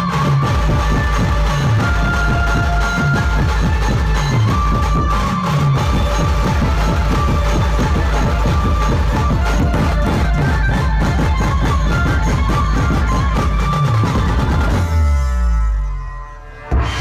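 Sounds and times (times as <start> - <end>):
heavy bass: 0.0 - 17.0.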